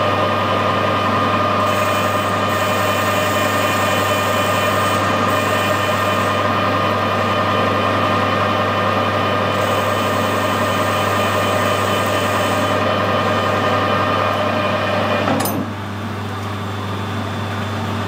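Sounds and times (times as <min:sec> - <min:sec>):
metal lathe humming and whining: 0:00.0 - 0:18.0.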